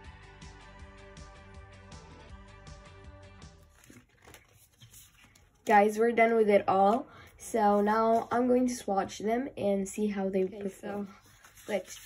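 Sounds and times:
background music: 0:00.0 - 0:04.4
paper rustling and ticking: 0:03.6 - 0:07.0, 0:10.4 - 0:12.0.

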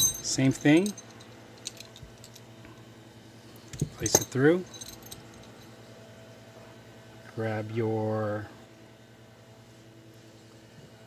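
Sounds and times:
metal fishing lure clinking: 0:00.0 - 0:02.4
steady low hum: 0:00.0 - 0:11.0.

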